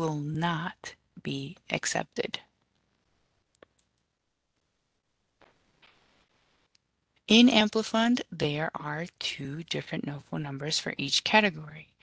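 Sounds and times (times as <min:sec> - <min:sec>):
computer mouse clicks: 0:03.5 - 0:04.1.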